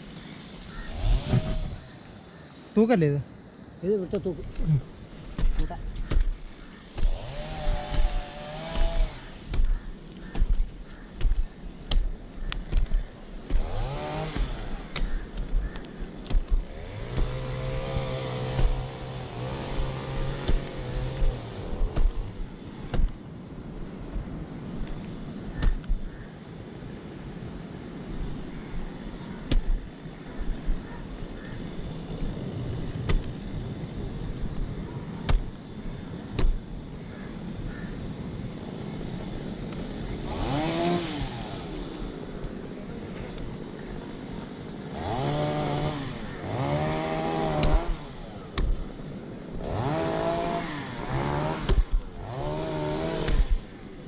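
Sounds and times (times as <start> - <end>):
climbing spikes knocking into trunk: 4.4 - 23.2, 25.6 - 26.1, 29.4 - 29.9, 33.0 - 33.4, 36.3 - 36.7, 47.2 - 48.8, 51.3 - 53.7.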